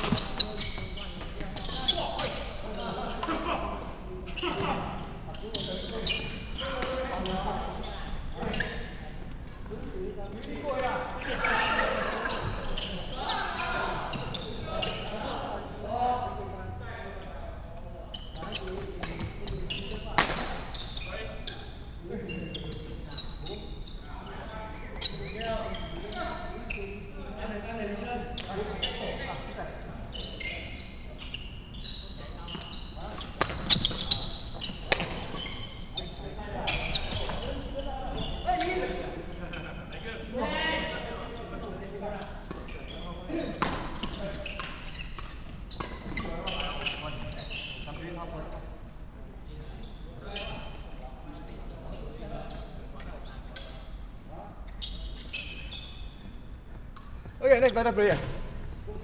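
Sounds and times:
shoe squeaks: 0.0s - 3.3s, 4.3s - 15.8s, 18.0s - 48.3s, 49.6s - 54.0s, 54.6s - 59.0s.

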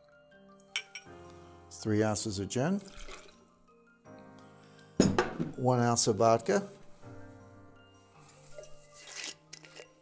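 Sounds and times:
soft background music: 0.0s - 10.0s
liquid trickling and dripping: 2.8s - 3.4s
glass bottle knocking on wood: 5.0s - 5.6s.

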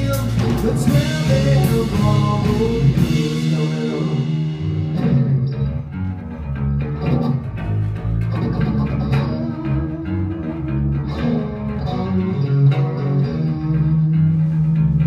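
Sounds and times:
drum kit: 0.0s - 15.0s
electric bass: 0.0s - 15.0s
electric guitar: 0.0s - 15.0s.

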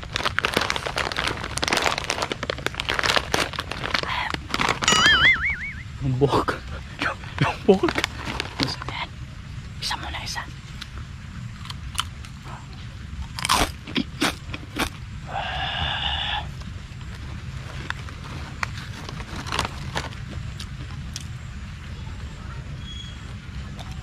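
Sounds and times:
chewing crunchy cracker: 0.0s - 4.9s, 11.6s - 15.0s, 16.5s - 21.4s, 23.7s - 24.0s
steady low rumble: 0.0s - 22.7s
brief pitched hum: 4.9s - 6.0s.

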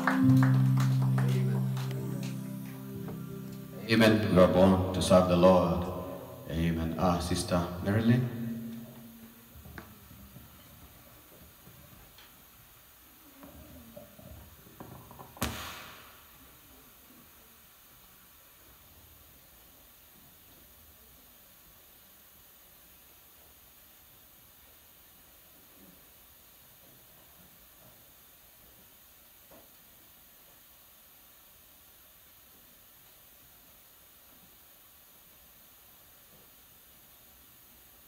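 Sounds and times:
steady hiss: 0.0s - 38.0s
sharp knock: 15.4s - 16.2s.

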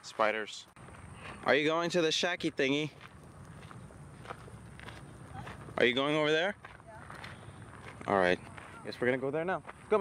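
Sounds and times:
footsteps on dirt path: 0.0s - 1.9s, 2.6s - 10.0s.

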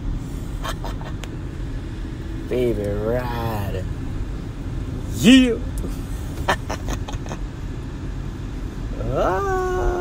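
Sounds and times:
car rumbling from inside cabin: 0.0s - 10.0s.

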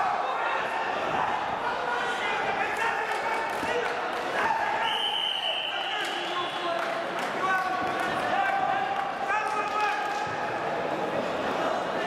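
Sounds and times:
voices calling out in hall: 0.0s - 12.0s.

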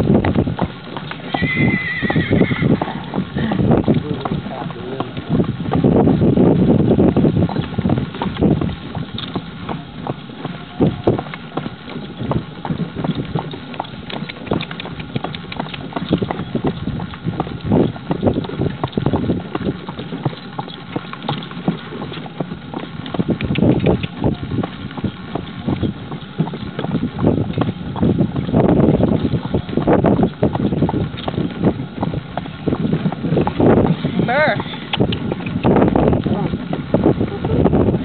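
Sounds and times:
horse hooves clip-clopping: 0.0s - 38.0s.

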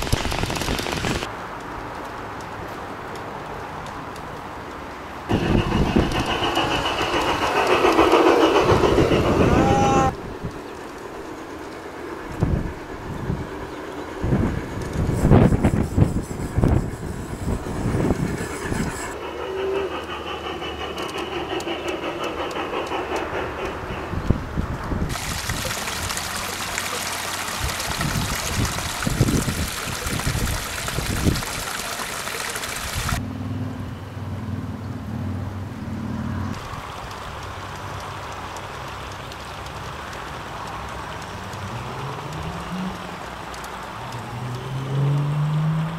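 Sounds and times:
model train rumbling on track: 0.0s - 1.3s, 4.1s - 33.2s, 35.9s - 45.9s
water splashing down rocks: 25.1s - 33.2s.

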